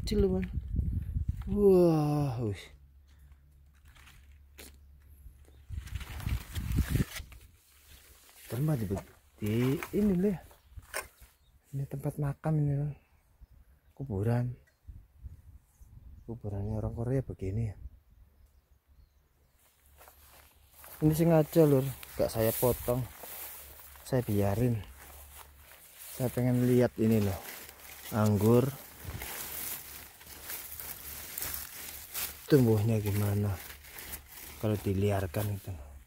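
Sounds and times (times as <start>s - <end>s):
rustling leaves and twigs: 3.0s - 11.7s, 19.4s - 36.0s
faint footsteps: 19.6s - 36.0s.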